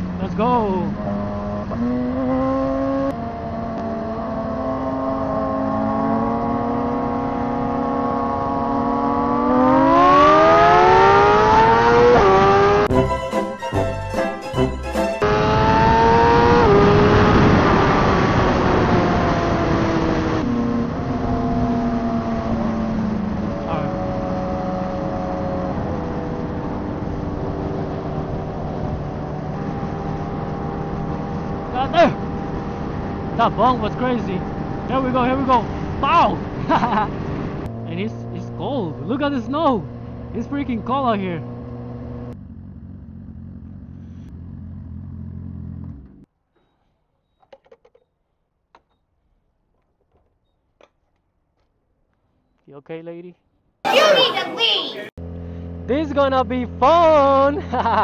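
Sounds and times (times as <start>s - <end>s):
motorcycle engine revving: 0.0s - 13.0s, 15.2s - 46.3s, 55.1s - 58.0s.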